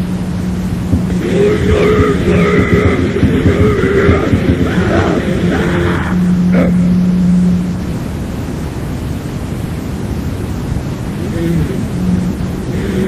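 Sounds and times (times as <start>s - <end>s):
distorted extreme metal: 0.0s - 9.7s, 10.7s - 13.0s.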